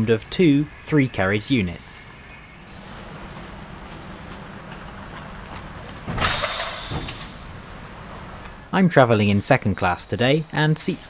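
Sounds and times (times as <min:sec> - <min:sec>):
electric train humming: 0:00.0 - 0:11.0
hiss of released air: 0:06.2 - 0:07.6.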